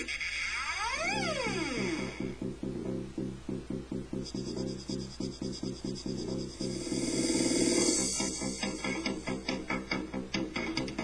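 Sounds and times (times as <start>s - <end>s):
fast-pulsing synth line: 0.7s - 9.5s
synthesizer sweep gliding in pitch: 0.8s - 9.4s
techno music: 1.1s - 11.0s.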